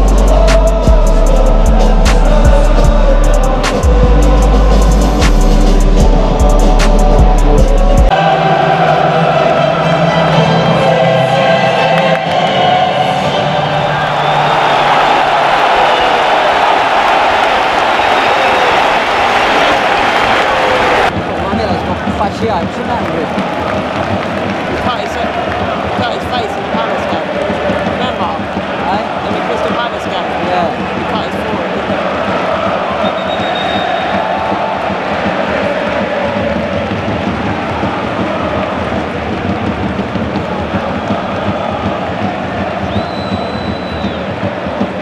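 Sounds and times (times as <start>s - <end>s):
music with deep bass beat: 0.0s - 8.2s
stadium crowd noise: 0.0s - 45.0s.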